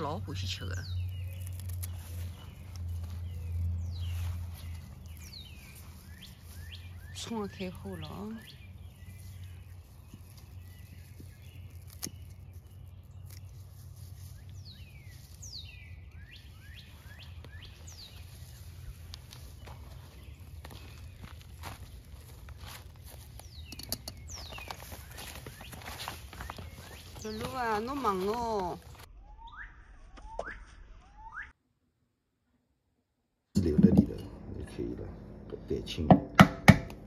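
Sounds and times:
leaves rustling: 0.0 - 29.1
low outdoor rumble: 0.0 - 29.1, 33.6 - 37.0
bird chirps: 0.0 - 31.6
stems snapping: 0.8 - 3.7, 9.4 - 14.6.

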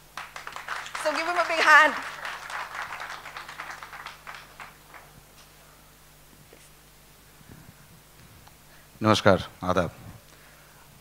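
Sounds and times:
small audience applause: 0.0 - 5.4.

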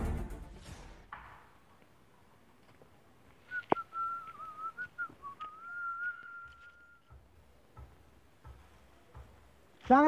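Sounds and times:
person whistling wavering note: 3.5 - 7.1.

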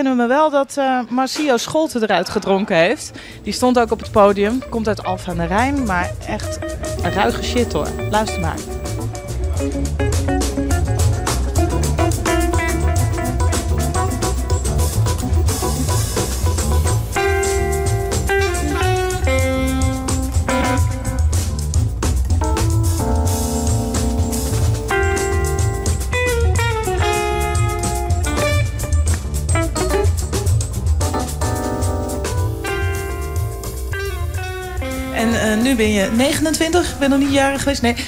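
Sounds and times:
electric guitar: 3.2 - 37.8
drum kit: 3.4 - 38.0
upright double bass: 3.6 - 37.4
saxophone: 4.0 - 21.8, 23.2 - 30.4, 31.9 - 37.4.

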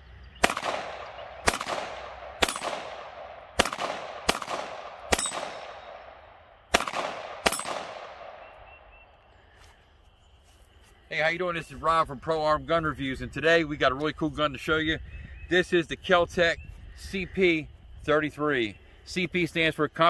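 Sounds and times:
pistol shots with echo: 0.4 - 8.9.

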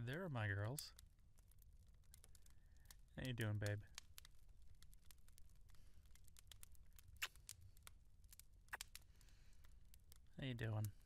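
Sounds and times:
small clicks: 1.0 - 11.0.

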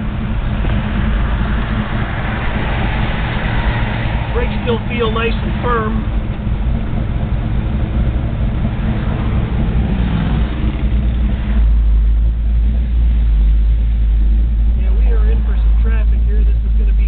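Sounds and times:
car engine rumbling: 0.0 - 17.0.

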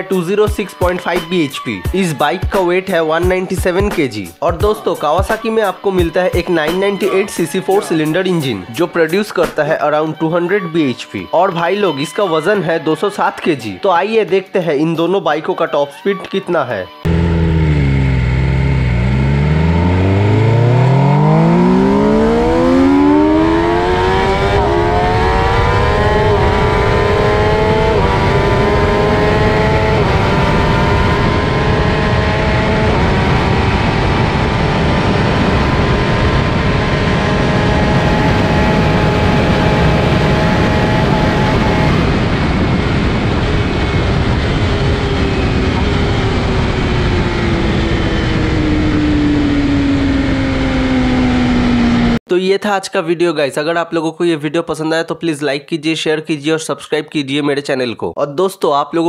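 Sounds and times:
motorcycle engine accelerating: 17.0 - 52.2
wind rush: 31.0 - 52.2.

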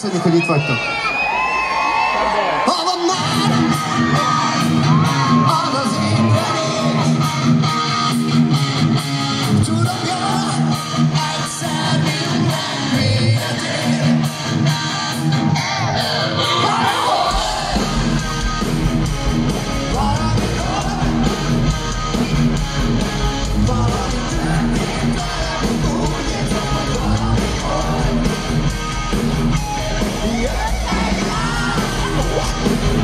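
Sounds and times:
live rock band playing: 3.0 - 33.0
male lead vocal: 3.2 - 7.8, 9.4 - 15.3, 16.3 - 18.2, 19.8 - 21.7, 23.4 - 28.7, 30.1 - 33.0.

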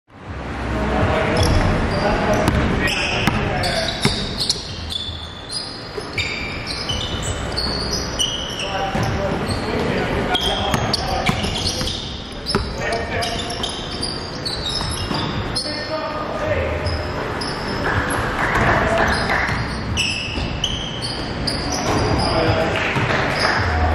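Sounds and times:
players calling out: 1.3 - 23.9
sneakers squeaking on court: 1.4 - 16.0, 16.7 - 23.8
basketball bouncing: 2.4 - 5.2, 10.5 - 13.9, 18.0 - 20.8.

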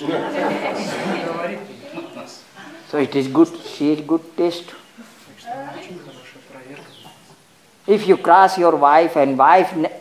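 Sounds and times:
faint bird calls: 5.7 - 7.6.

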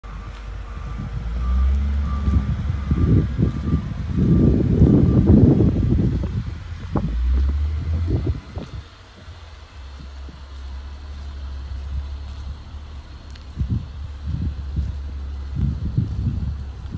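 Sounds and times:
wind buffeting microphone: 0.1 - 16.9.

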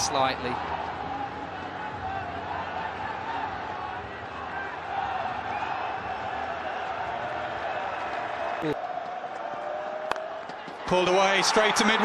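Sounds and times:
stadium crowd murmur: 0.5 - 12.0.

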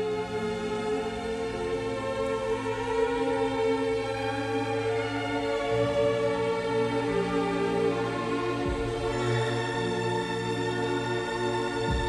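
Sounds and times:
slow classical music chords: 0.0 - 12.0.

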